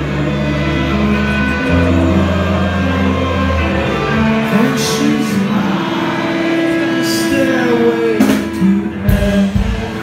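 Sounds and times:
live band playing low chords: 0.0 - 10.0.

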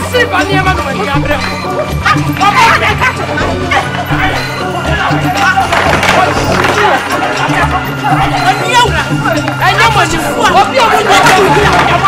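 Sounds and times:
voices talking and shouting: 0.0 - 12.0.

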